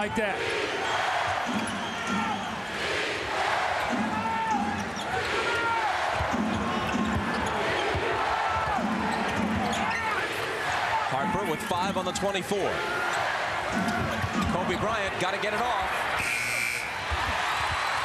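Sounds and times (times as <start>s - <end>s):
arena crowd noise: 0.0s - 18.0s
sneakers squeaking on floor: 6.4s - 8.0s.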